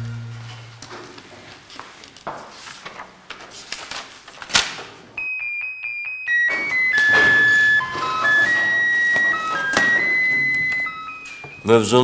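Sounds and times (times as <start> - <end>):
electronic keyboard music: 5.2 - 12.0.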